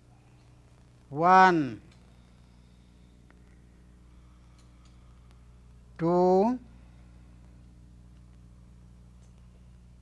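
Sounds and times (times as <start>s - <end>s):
faint hiss: 0.0s - 10.0s
low electrical hum: 0.0s - 10.0s
faint ticks: 4.4s - 5.8s, 7.4s - 9.9s.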